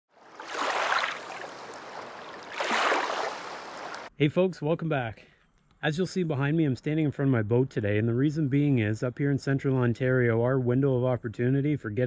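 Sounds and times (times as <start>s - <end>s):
rushing water: 0.2s - 4.1s.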